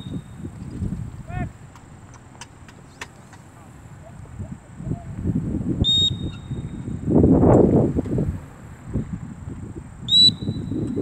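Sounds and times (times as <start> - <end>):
wind buffeting microphone: 0.0 - 11.0
dog-training whistle: 5.8 - 6.8, 10.1 - 11.0.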